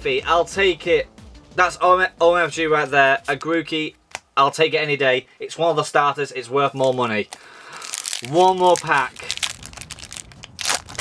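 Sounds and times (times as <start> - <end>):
foil wrapper crinkling: 6.7 - 11.0
foil wrapper ripping: 6.8 - 11.0.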